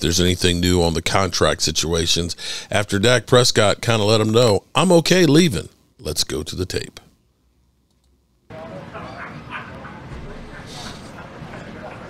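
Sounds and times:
room ambience: 0:00.0 - 0:12.0
faint distant voices: 0:08.5 - 0:12.0.

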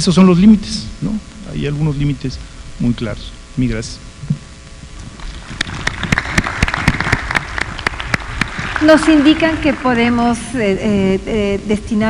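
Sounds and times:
audience applauding: 0:05.3 - 0:10.3.

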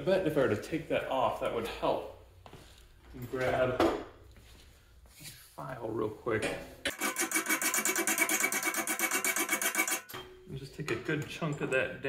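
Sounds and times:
hand file rasping on steel: 0:06.9 - 0:10.1.

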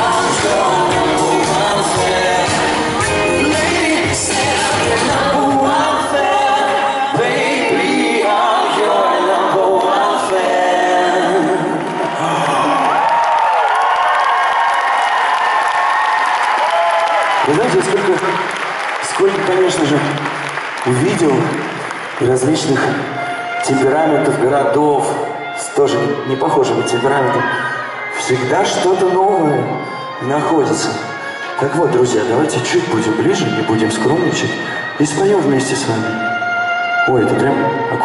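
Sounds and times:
audience applauding and cheering: 0:00.0 - 0:05.2, 0:11.6 - 0:36.5
live band playing: 0:00.0 - 0:05.5, 0:17.6 - 0:38.0
man singing lead: 0:00.0 - 0:12.9.

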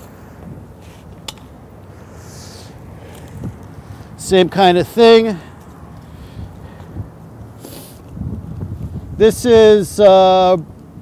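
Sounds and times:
soft rustle of objects handled: 0:00.0 - 0:04.2
low rumble of traffic: 0:00.0 - 0:11.0.

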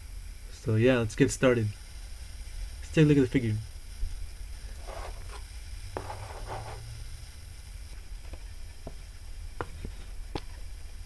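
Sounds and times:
steady low hum: 0:00.0 - 0:11.0
rustling scrapes: 0:04.8 - 0:05.4, 0:06.0 - 0:06.8.

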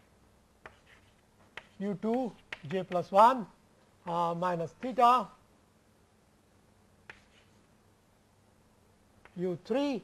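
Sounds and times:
chalk scraping on blackboard: 0:00.6 - 0:02.7, 0:07.1 - 0:07.7
chalk tapping on blackboard: 0:00.6 - 0:03.3, 0:04.7 - 0:05.1, 0:07.0 - 0:07.6, 0:09.2 - 0:09.4.

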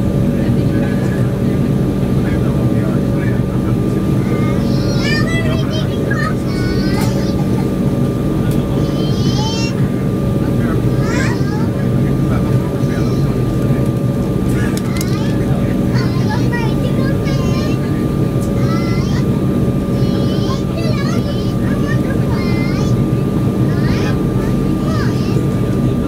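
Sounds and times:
jet engine cabin drone: 0:00.0 - 0:26.0
high-pitched voices: 0:04.1 - 0:07.9.

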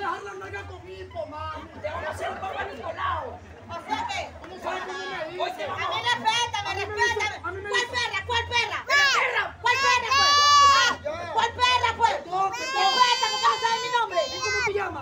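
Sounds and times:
people talking and calling out: 0:00.0 - 0:15.0.

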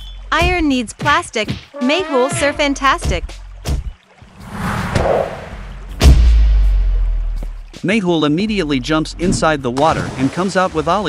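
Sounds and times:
swoosh sound effect: 0:04.3 - 0:06.0.

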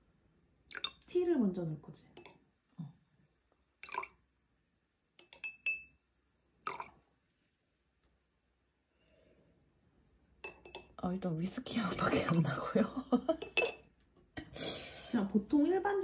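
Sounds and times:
teaspoon clinking against glass: 0:05.2 - 0:05.9, 0:10.4 - 0:11.0, 0:13.4 - 0:13.9.

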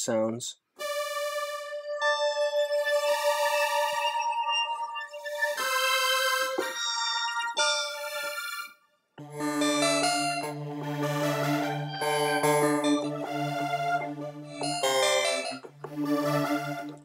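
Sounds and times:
synthesizer sustained layered notes: 0:00.8 - 0:17.0.

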